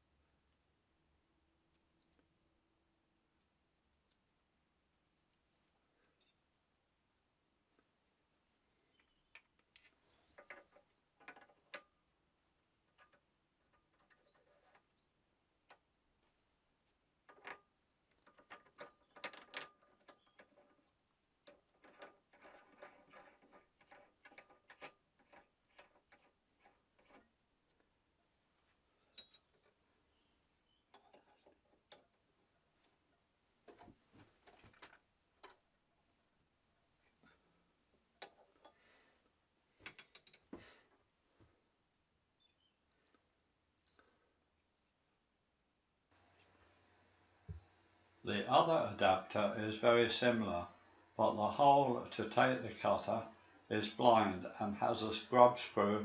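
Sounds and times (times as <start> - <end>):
metal tools clicking and clinking: 6.0 - 6.4, 29.1 - 29.8, 39.9 - 40.5.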